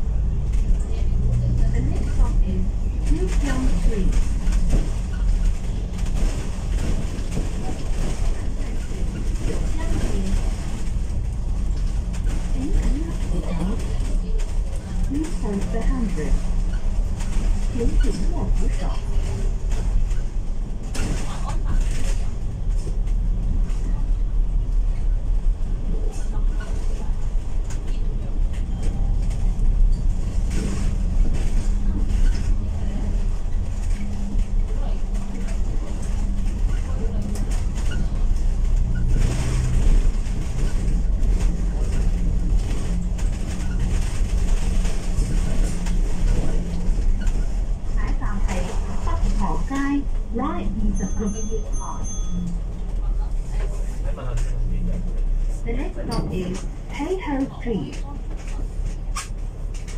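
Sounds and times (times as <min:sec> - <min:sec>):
bus body rattles: 0:00.0 - 0:59.9
bus engine and road rumble: 0:00.0 - 0:59.9.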